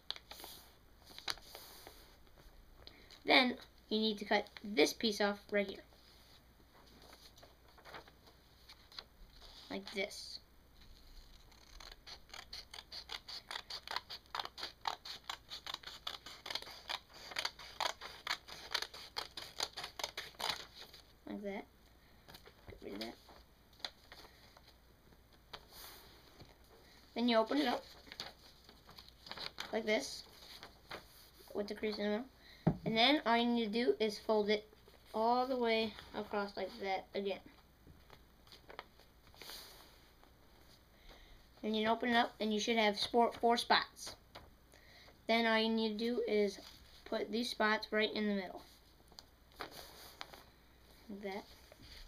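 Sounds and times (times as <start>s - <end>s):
paper rustling and crackling: 6.8s - 10.0s, 27.4s - 31.5s, 38.0s - 39.6s, 49.1s - 50.5s
scissors snipping paper: 11.2s - 20.9s.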